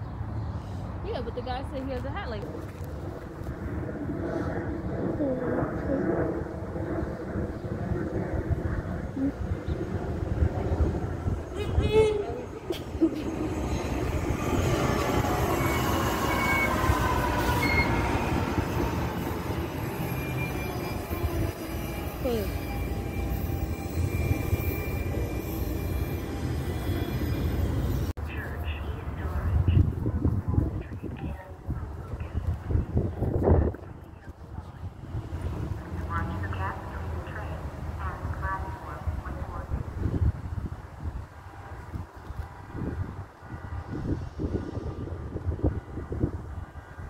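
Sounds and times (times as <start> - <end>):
train whine: 8.4 - 29.5
train wheels rumbling on rails: 11.0 - 28.1.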